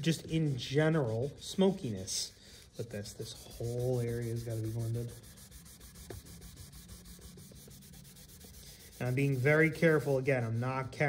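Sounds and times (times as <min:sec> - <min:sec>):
paper towel rubbing on paper: 0:00.0 - 0:11.0.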